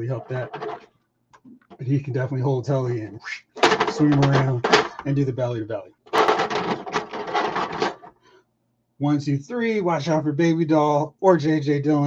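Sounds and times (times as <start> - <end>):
plastic figures clattering on mat: 0.3 - 0.9, 3.6 - 5.1, 6.1 - 8.2.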